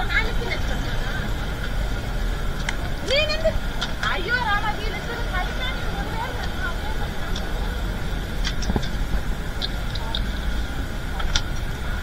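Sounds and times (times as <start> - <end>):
low rumble of vehicles: 0.0 - 12.0
people talking indistinctly: 0.0 - 12.0.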